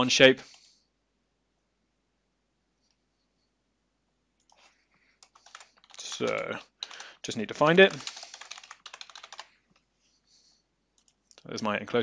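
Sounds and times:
computer keyboard typing: 4.4s - 9.5s, 11.0s - 11.3s.

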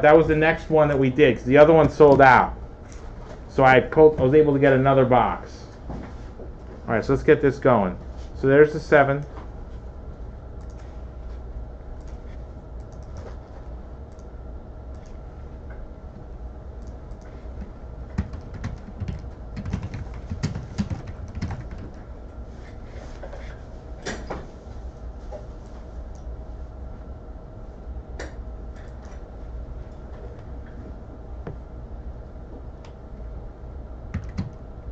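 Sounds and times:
steady low hum: 0.0s - 34.9s
computer mouse and keyboard clicks: 12.8s - 13.4s, 18.1s - 22.0s.

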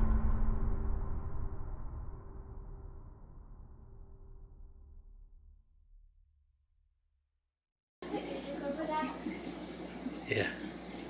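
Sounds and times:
aquarium water trickling: 8.0s - 11.0s
person saying a word: 10.3s - 10.6s.

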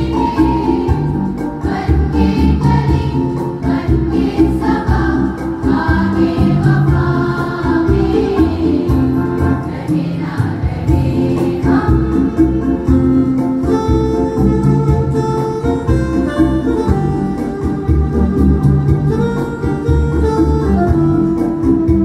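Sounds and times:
girls choir singing: 0.0s - 12.9s.

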